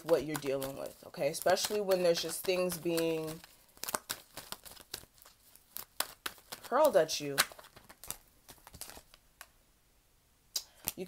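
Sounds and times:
handling clicks and crinkles: 0.0s - 9.6s.

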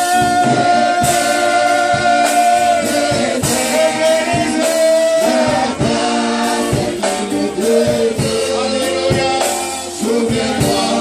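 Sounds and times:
drum strokes: 0.0s - 11.0s
man singing into a microphone: 0.0s - 11.0s
voices singing along: 0.0s - 11.0s.

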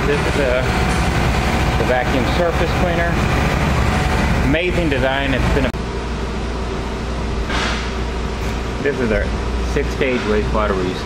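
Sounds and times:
pump engine hum: 0.0s - 5.7s.

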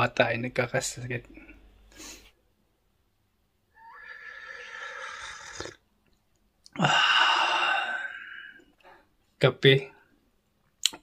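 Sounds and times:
slurping hot coffee: 4.2s - 5.8s.

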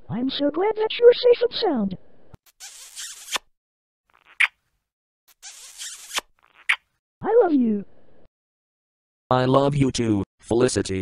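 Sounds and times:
cartoon kissing smooches: 2.5s - 3.5s, 4.1s - 4.6s, 5.3s - 6.9s
short high squeak: 2.5s - 3.5s, 5.3s - 6.8s.

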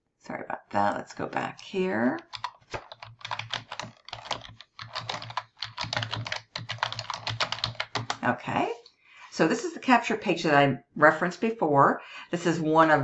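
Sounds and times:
typing on computer keyboard: 2.2s - 8.2s.

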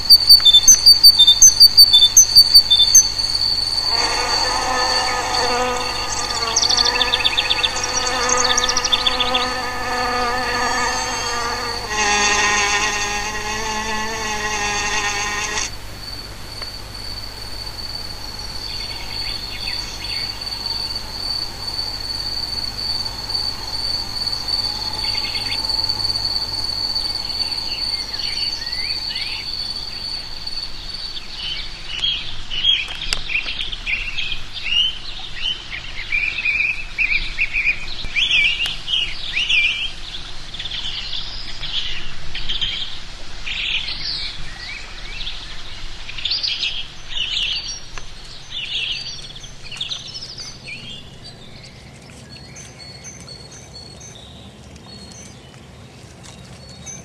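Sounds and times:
small bird chirping: 0.0s - 31.7s
high insect trill: 0.0s - 32.2s.

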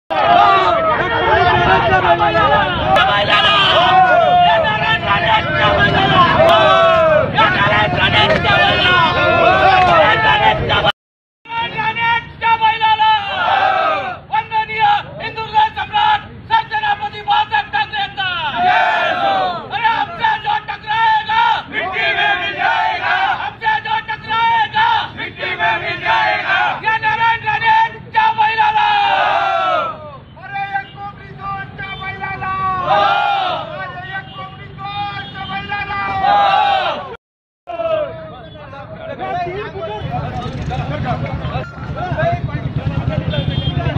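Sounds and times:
crowd of men shouting slogans: 0.1s - 10.9s, 13.0s - 14.2s, 18.4s - 30.1s, 32.4s - 34.0s, 35.5s - 38.2s.

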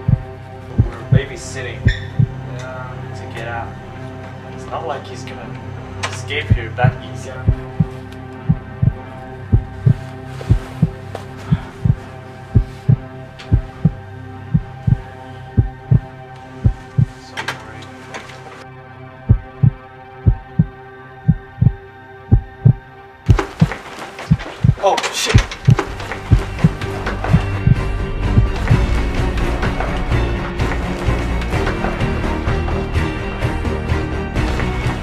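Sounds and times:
low suspense drone: 0.0s - 17.2s, 25.4s - 35.0s
heartbeat double thump: 0.1s - 1.2s, 2.1s - 2.4s, 7.5s - 7.9s, 8.5s - 11.0s, 12.6s - 15.0s, 15.6s - 16.1s, 16.7s - 17.1s, 19.3s - 24.8s, 25.4s - 30.0s.

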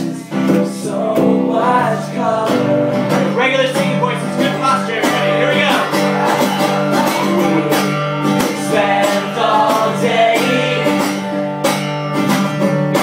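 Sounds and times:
man singing: 0.0s - 11.2s
acoustic guitar strummed: 0.0s - 13.0s.

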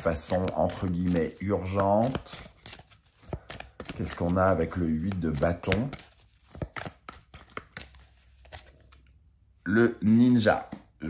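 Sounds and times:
cards being shuffled: 0.0s - 9.1s.

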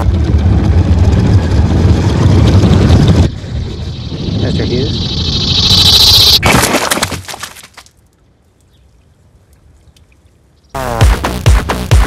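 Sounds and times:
loud high whine: 0.0s - 6.4s
explosive cracks and splatter: 6.4s - 7.9s.

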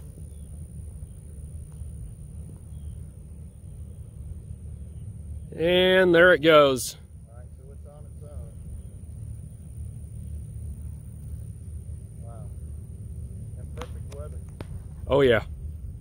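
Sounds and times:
thin steady high tone: 0.0s - 14.4s.

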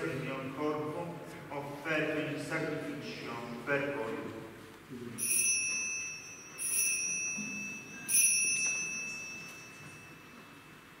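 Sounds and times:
small altar bell ringing: 5.2s - 11.0s.

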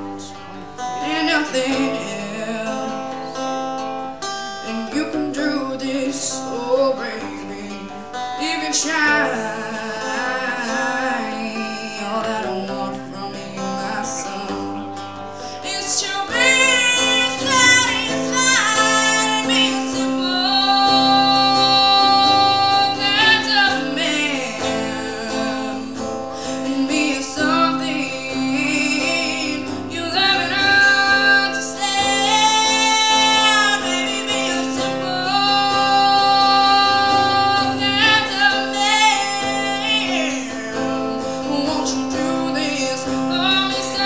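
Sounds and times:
guitar accompaniment: 0.0s - 44.0s
woman singing with vibrato: 0.0s - 44.0s.

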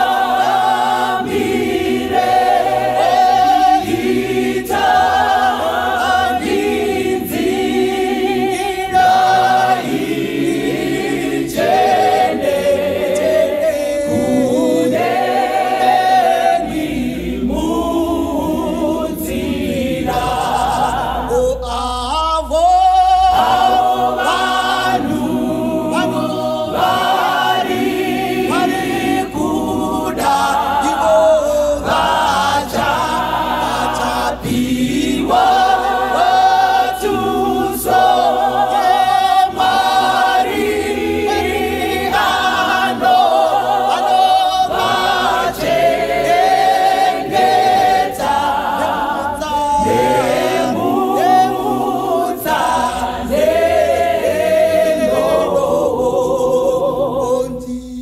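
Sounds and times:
choir singing a cappella: 0.0s - 58.0s.

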